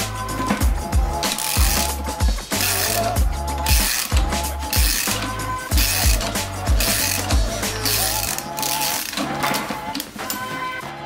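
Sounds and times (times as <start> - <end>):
background music: 0.0 - 11.0
ratchet wrench clicking: 0.3 - 9.3.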